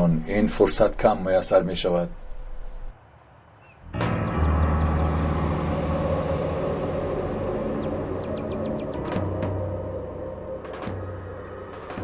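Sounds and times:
dramatic score music: 3.9 - 12.0
low sustained drone: 3.9 - 12.0.

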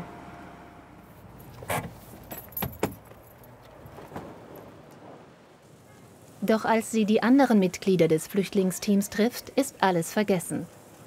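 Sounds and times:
luggage cases clunking and rattling: 1.4 - 4.7
metal luggage trolley rattling: 1.6 - 4.2.

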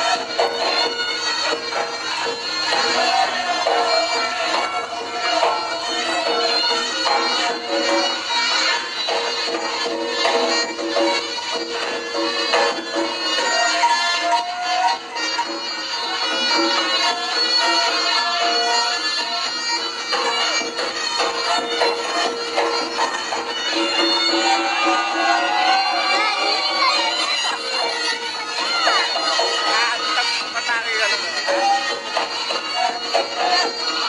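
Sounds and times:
drum strokes: 0.0 - 34.0
held gamelan tones: 0.0 - 34.0
shawm melody: 0.0 - 34.0.

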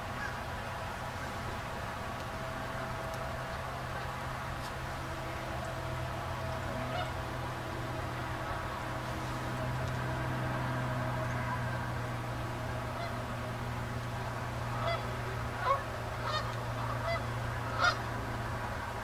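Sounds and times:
geese honking: 0.0 - 0.5, 2.7 - 13.4, 14.2 - 18.2
steady low hum: 0.0 - 19.0.

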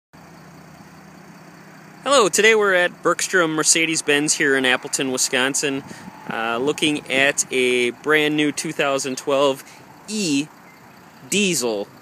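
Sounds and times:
diesel engine idling quietly: 0.2 - 12.0.

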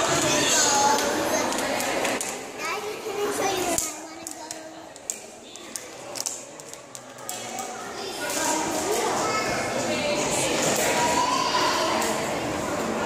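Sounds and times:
children's voices: 0.0 - 13.0
visitors chatting: 0.0 - 13.0.

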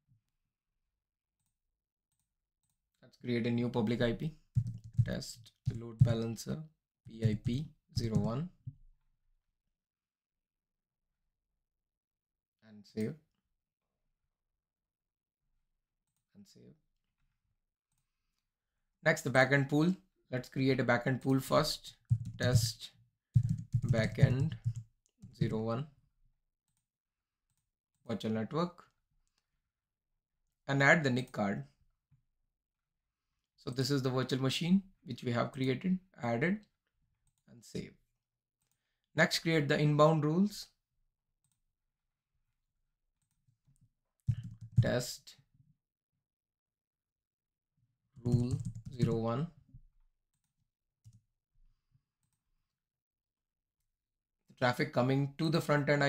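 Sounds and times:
computer mouse clicks: 44.2 - 44.9, 48.2 - 49.2.

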